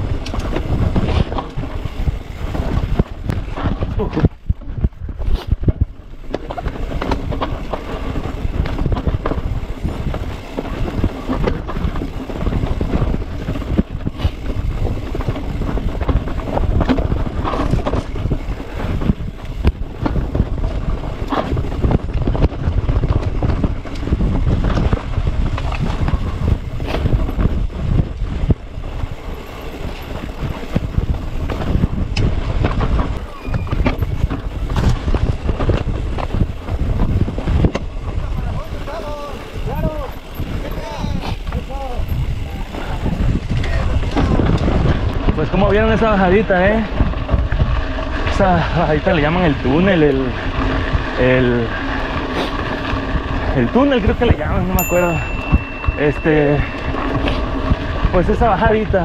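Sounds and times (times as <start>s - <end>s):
bike knocks and rattles: 0.0s - 59.0s
wind buffeting microphone: 0.0s - 59.0s.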